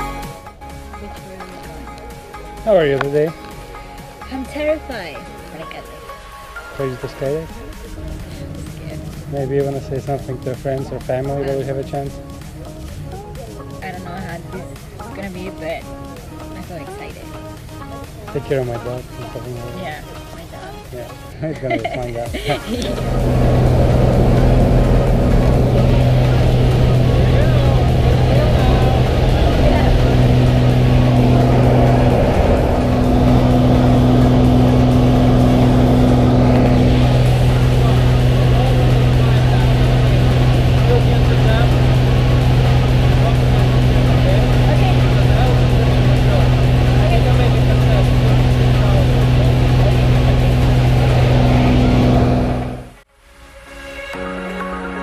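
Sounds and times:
plane engine and propeller droning: 0:00.0 - 0:53.0.

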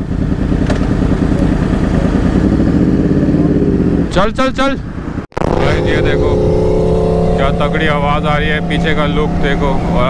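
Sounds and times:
motorcycle engines idling: 0:00.0 - 0:04.2
engine revving: 0:05.4 - 0:10.0.

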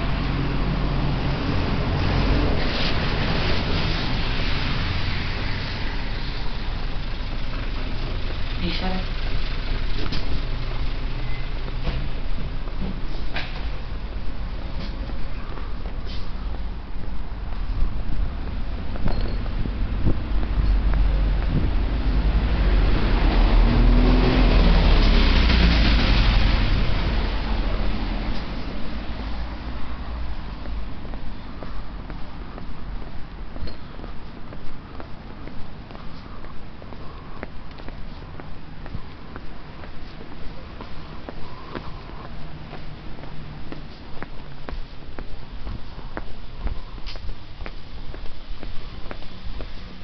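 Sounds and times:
traffic rumble: 0:00.0 - 0:50.0
wind buffeting microphone: 0:15.7 - 0:50.0.

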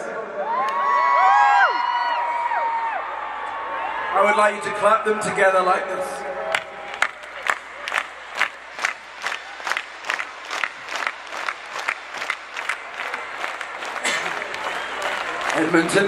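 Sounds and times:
applause and cheering: 0:00.4 - 0:04.2, 0:06.5 - 0:16.0
crowd clapping in unison: 0:06.5 - 0:16.0.

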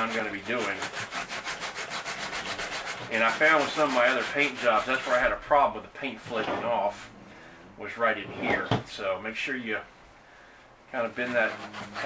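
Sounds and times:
scuff pad scratching plastic: 0:00.0 - 0:05.3, 0:11.1 - 0:12.0.

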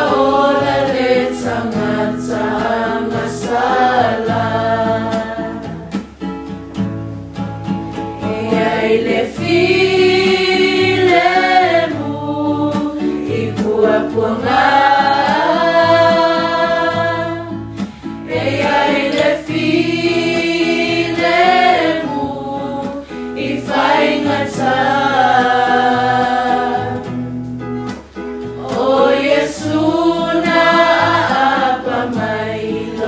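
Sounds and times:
choir singing: 0:00.0 - 0:06.0, 0:08.2 - 0:27.3, 0:28.5 - 0:33.0.

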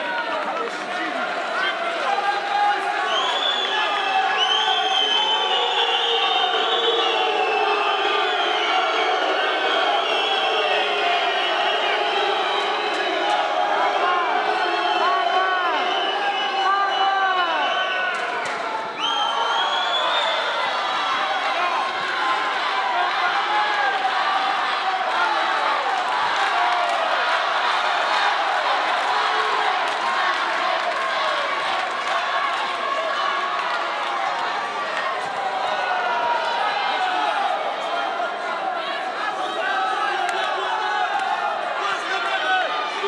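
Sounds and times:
crowd shouting and cheering: 0:00.0 - 0:43.0.

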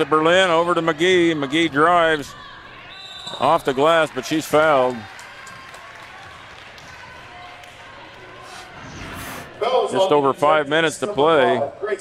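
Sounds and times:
murmur of crowd and players: 0:00.0 - 0:12.0.

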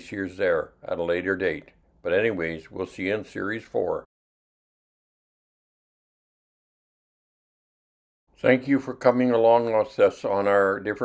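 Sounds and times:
man narrating: 0:00.0 - 0:04.1, 0:08.4 - 0:11.0.

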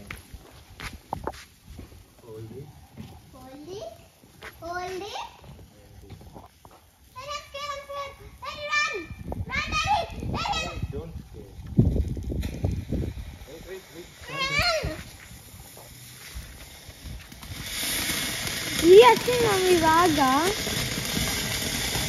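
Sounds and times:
steady hiss: 0:00.0 - 0:22.0.

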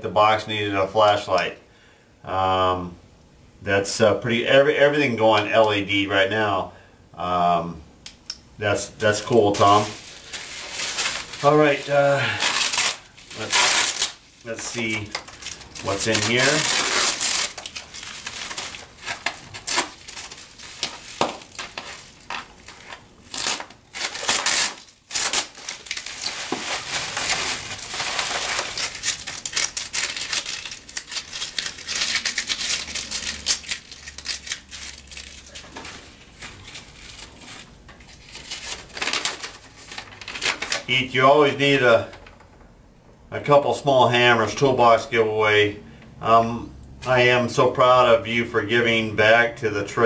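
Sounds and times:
bubble wrap and tape crinkling: 0:09.0 - 0:42.4.

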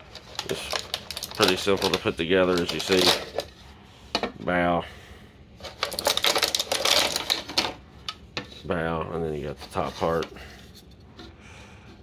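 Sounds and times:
plastic packaging crinkling: 0:00.0 - 0:03.6, 0:05.6 - 0:07.8.

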